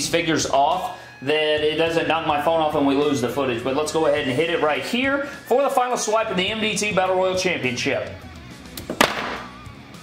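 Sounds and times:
sharp knock: 8.9 - 9.5.

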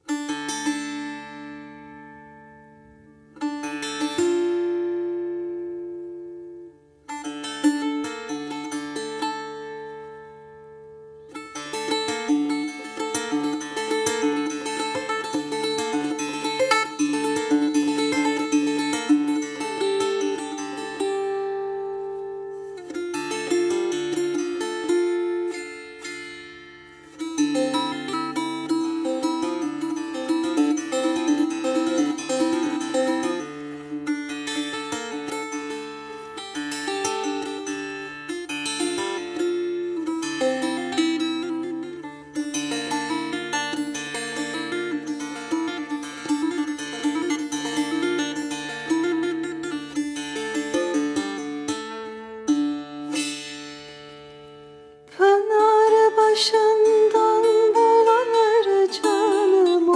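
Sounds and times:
plucked long-necked lute melody: 0.0 - 59.9.

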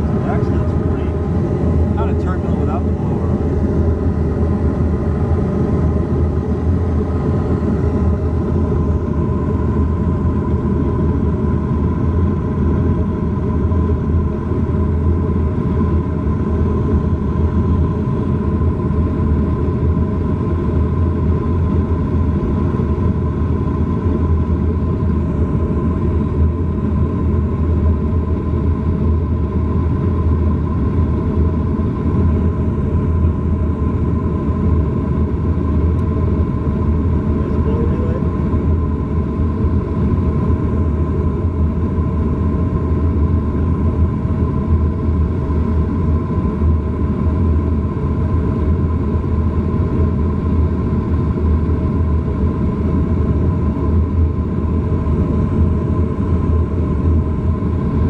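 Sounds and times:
gas furnace rumbling: 0.0 - 10.1
steady whine: 0.0 - 58.0.

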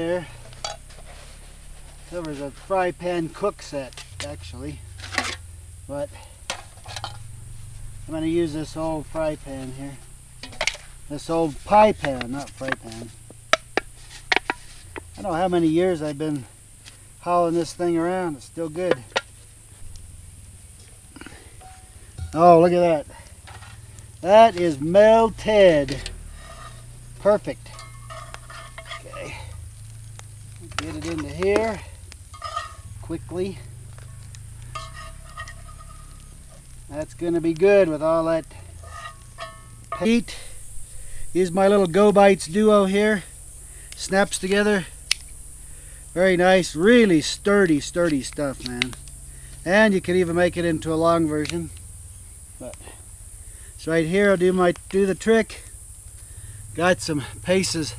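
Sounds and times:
aluminium pie pans clinking: 0.0 - 2.7, 6.5 - 7.3, 10.4 - 15.0, 25.8 - 29.7, 30.6 - 33.0, 33.9 - 36.7, 38.6 - 40.6
metal utensil scraping skillet: 0.0 - 2.7, 3.3 - 5.4, 6.5 - 8.0, 10.4 - 15.3, 25.8 - 29.7, 30.7 - 33.0, 34.2 - 36.7, 38.4 - 40.8
sharp metallic knocks: 34.7 - 36.2, 38.8 - 40.3.

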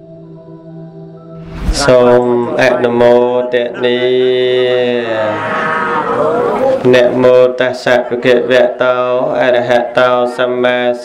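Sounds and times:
man chanting a long note: 1.8 - 11.0.

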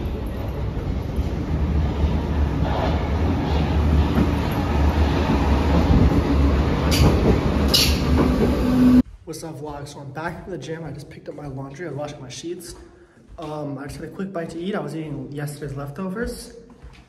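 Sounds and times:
train low hum: 0.0 - 9.1
train rumbling into station: 0.0 - 9.1.

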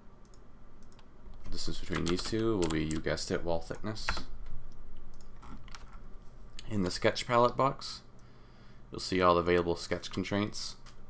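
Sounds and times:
low steady hum: 0.0 - 11.0
computer keyboard keystrokes: 0.2 - 3.1, 5.1 - 6.0.

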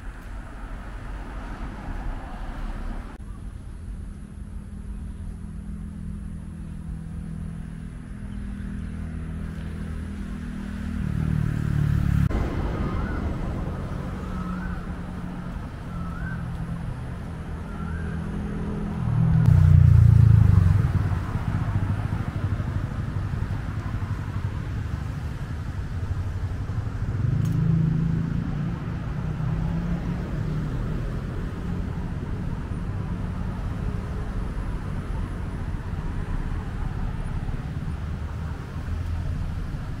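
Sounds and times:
loud vehicle passing: 0.0 - 3.2, 5.5 - 40.0
road traffic rumble: 0.0 - 40.0.

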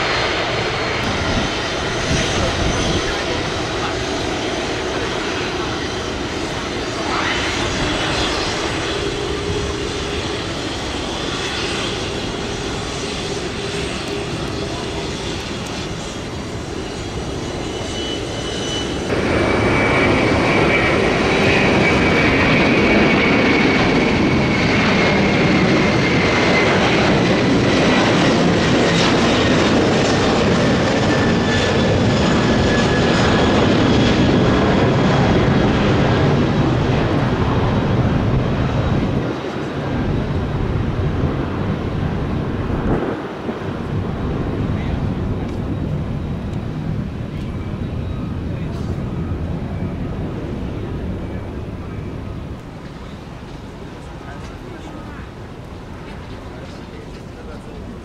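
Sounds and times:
jet engines at takeoff thrust: 0.0 - 58.0
jet engines running at low power: 0.0 - 58.0.

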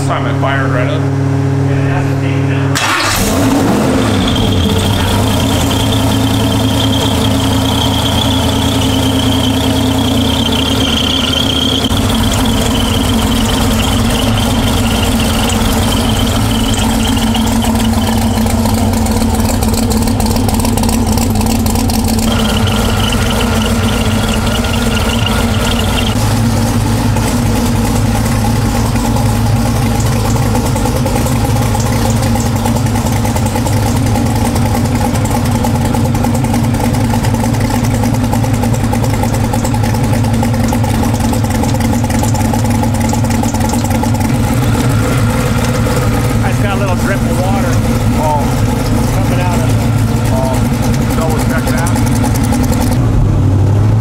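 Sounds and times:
car engine idling: 0.0 - 54.0
supercharger whine: 0.0 - 54.0.

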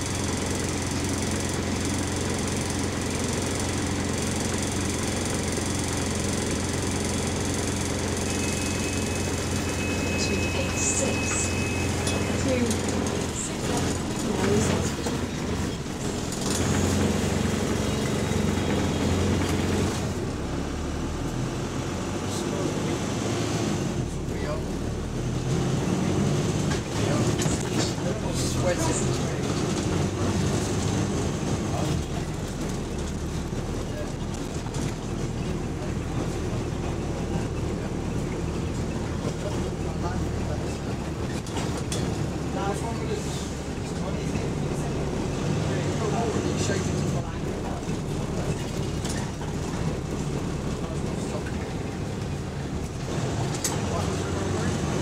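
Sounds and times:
bus engine running: 0.0 - 55.0
road noise: 0.0 - 55.0.

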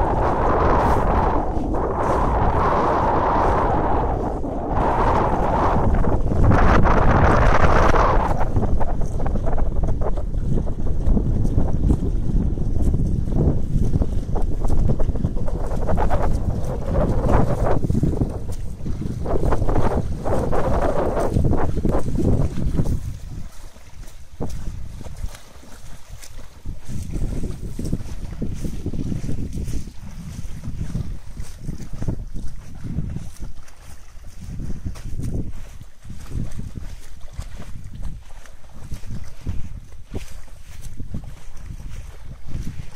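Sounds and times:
wind buffeting microphone: 0.0 - 42.9.

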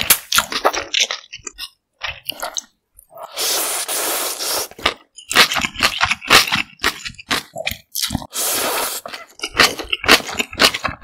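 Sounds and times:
slurping cold noodles: 3.1 - 6.0, 8.1 - 9.8.

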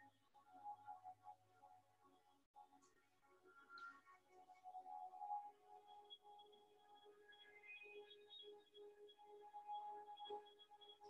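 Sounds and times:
soft ambient music: 0.0 - 11.0.

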